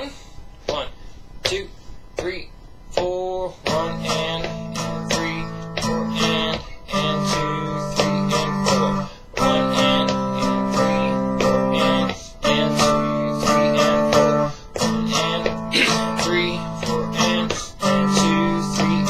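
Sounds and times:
electric guitar string bending: 0:03.6 - 0:19.0.

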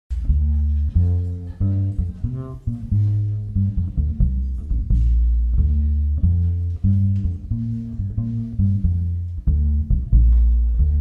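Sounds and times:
double bass plucked notes: 0:00.1 - 0:11.0.

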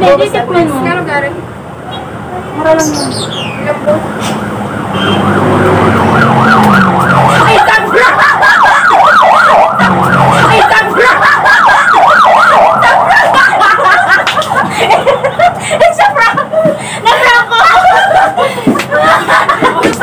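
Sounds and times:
siren yelping: 0:03.6 - 0:14.0.

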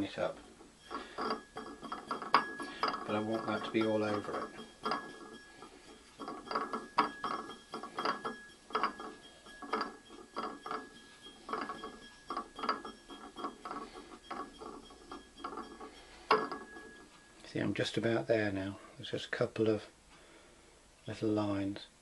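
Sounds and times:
banding wheel clicking and rattling: 0:00.0 - 0:17.5.

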